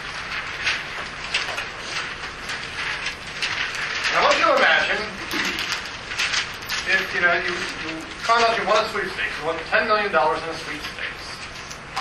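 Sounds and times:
paper rustling: 0.0s - 12.0s.

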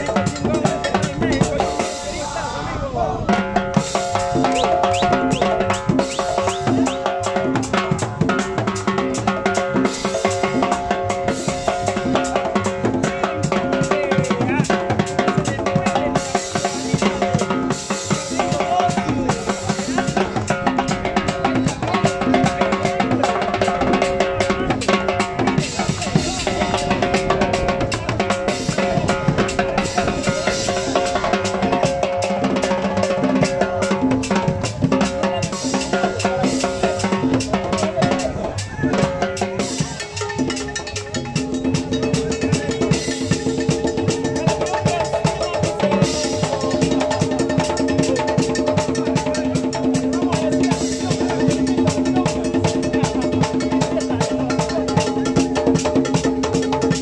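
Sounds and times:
drum kit beat: 0.0s - 2.5s, 3.2s - 57.0s
live band dance music: 0.0s - 57.0s.

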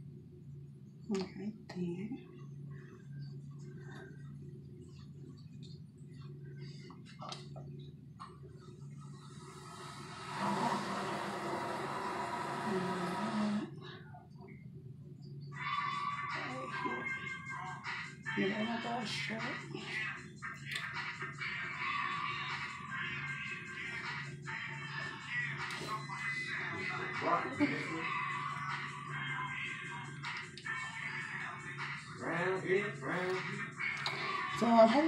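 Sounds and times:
television music: 0.0s - 35.0s
television speech: 1.0s - 7.9s, 8.6s - 14.6s, 15.5s - 35.0s
hiss: 9.4s - 13.7s.

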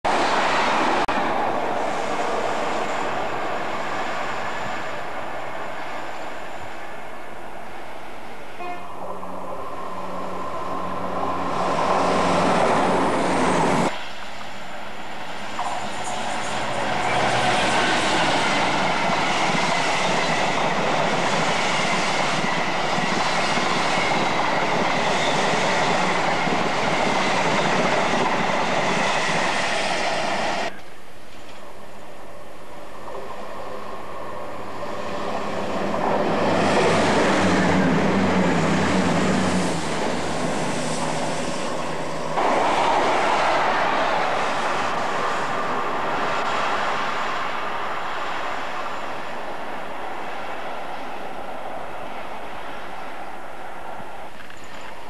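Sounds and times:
freight train rumbling past: 0.1s - 30.8s, 31.6s - 55.0s
trains rushing by: 0.1s - 30.8s, 31.4s - 55.0s.

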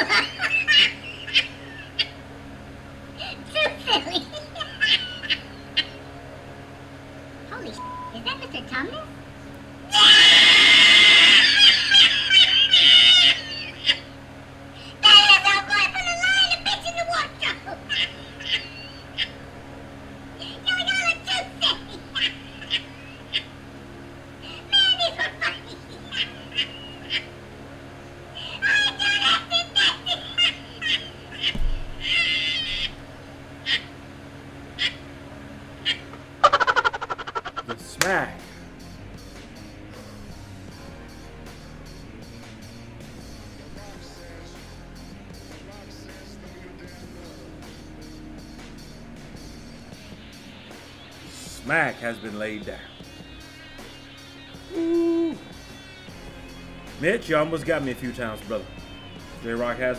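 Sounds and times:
stifled high-pitched laughter: 0.0s - 2.2s, 3.2s - 6.0s, 9.9s - 14.1s, 24.5s - 27.3s, 28.4s - 33.0s, 35.9s - 37.8s
loud harsh scream: 9.9s - 13.7s
short cry: 54.7s - 55.6s.

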